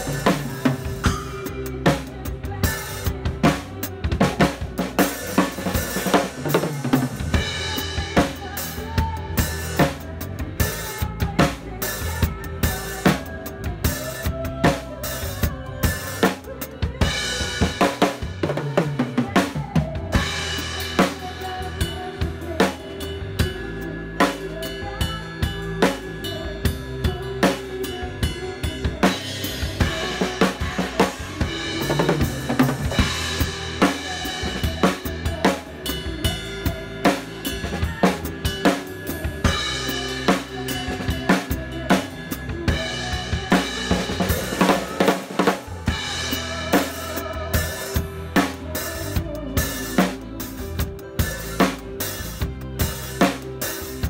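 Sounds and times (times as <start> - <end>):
drum kit playing a groove: 0.0 - 54.0.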